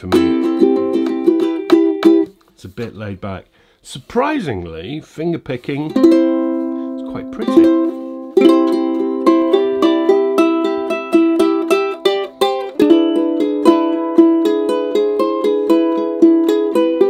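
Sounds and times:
ukulele finger-picked notes: 0.0 - 2.5, 5.8 - 17.0.

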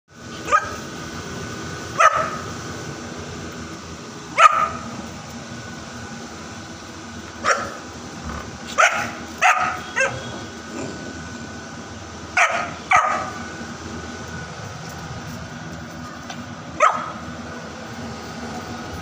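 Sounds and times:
puppy barking: 0.4 - 0.8, 2.0 - 2.5, 4.3 - 4.9, 7.4 - 7.8, 8.7 - 10.4, 12.4 - 13.4, 16.8 - 17.2.

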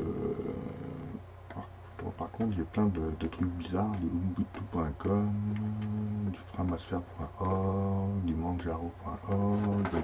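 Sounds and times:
man's hesitation sound: 0.0 - 10.0.

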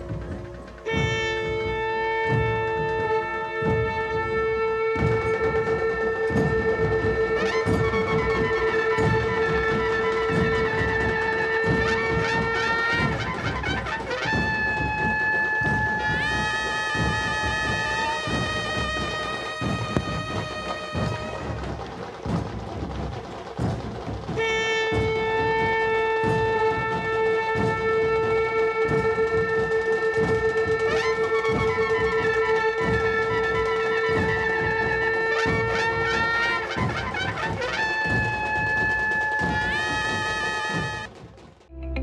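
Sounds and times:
long horn note: 0.0 - 22.1, 24.4 - 41.1
drums beating: 0.0 - 42.0
wind instrument drone: 0.0 - 42.0.

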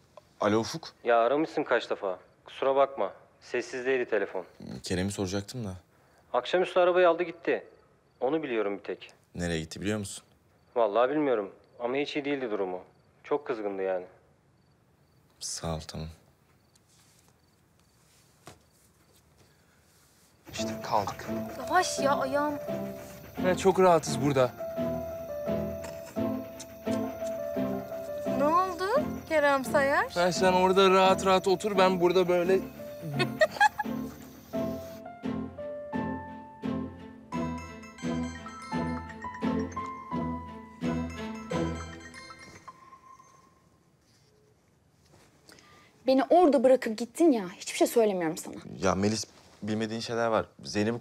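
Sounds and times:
soft smartphone beep: 41.6 - 43.8.

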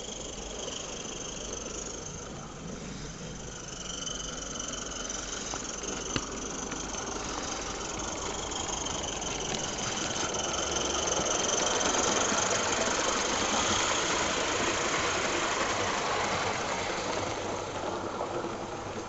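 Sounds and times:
model steam train rattling past: 0.0 - 19.0.

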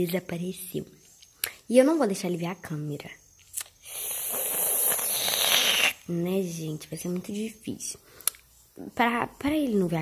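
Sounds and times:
crackling hiss on microphone: 3.5 - 6.3.

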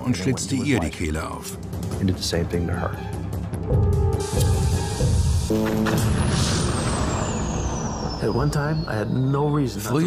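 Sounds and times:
man talking: 0.0 - 3.0, 8.2 - 10.0
high whistle falling in pitch: 5.6 - 9.2.

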